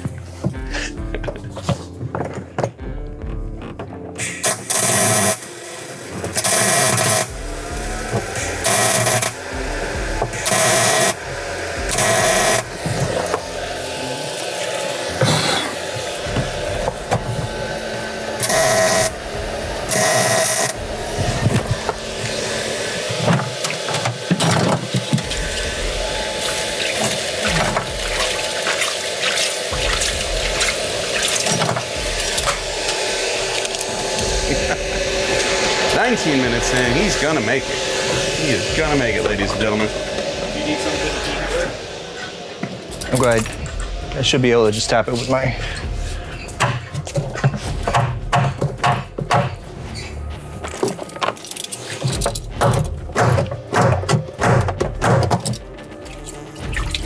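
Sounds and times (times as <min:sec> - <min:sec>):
welder arc crackling: 0:04.2 - 0:47.8.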